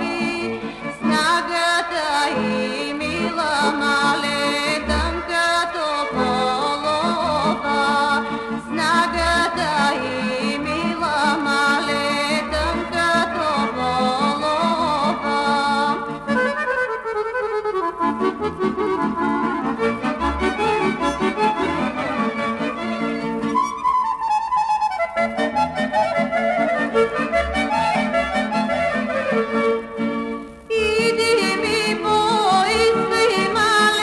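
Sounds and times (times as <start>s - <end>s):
instrumental folk music: 0.0s - 34.0s.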